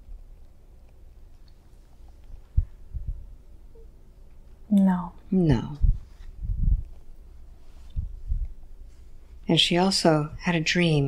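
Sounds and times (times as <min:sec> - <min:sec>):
steady low hum: 0:00.0 - 0:11.0
dull low thumps: 0:02.5 - 0:03.4, 0:05.7 - 0:07.0, 0:07.9 - 0:08.7.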